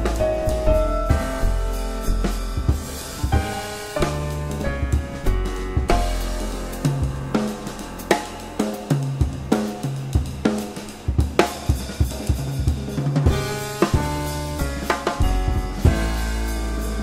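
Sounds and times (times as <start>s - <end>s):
double bass notes: 0.0s - 10.2s, 13.3s - 17.0s
grand piano chords: 0.0s - 10.2s, 13.3s - 17.0s
snare drum: 0.0s - 16.2s
bass drum: 0.0s - 17.0s.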